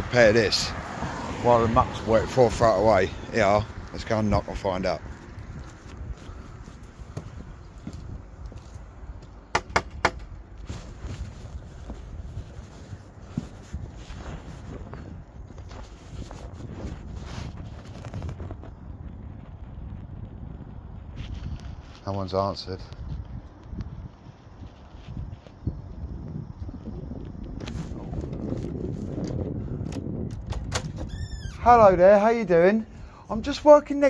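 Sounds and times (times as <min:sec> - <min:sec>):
footsteps: 0:00.9 - 0:18.7
cloth rubbing on microphone: 0:02.4 - 0:08.9, 0:10.6 - 0:18.8, 0:21.0 - 0:22.3, 0:23.9 - 0:26.0, 0:27.6 - 0:29.2.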